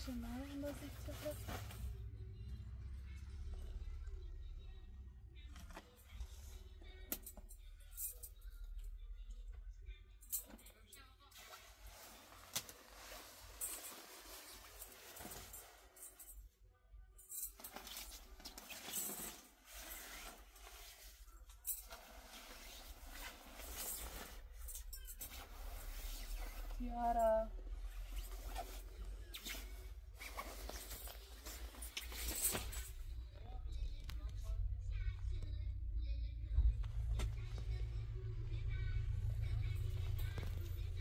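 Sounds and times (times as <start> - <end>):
clothes rustling: 0.0 - 2.2, 11.4 - 16.4, 17.4 - 34.3
faint background music: 0.0 - 41.0.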